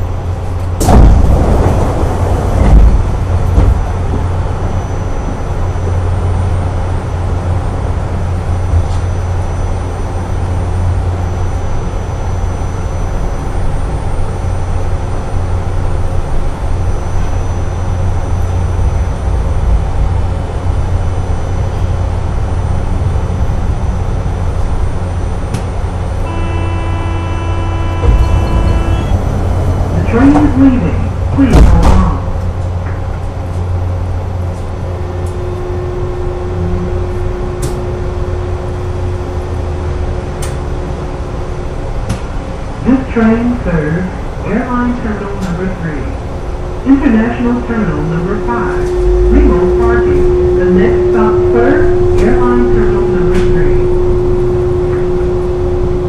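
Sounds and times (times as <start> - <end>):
low hum inside tram car: 0.0 - 56.0
held electronic tone: 26.1 - 31.7, 47.0 - 56.0.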